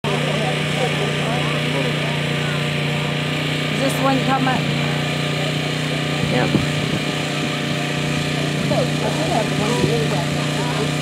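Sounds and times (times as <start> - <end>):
people talking: 0.0 - 7.3, 8.3 - 11.0
small engine running: 0.0 - 11.0.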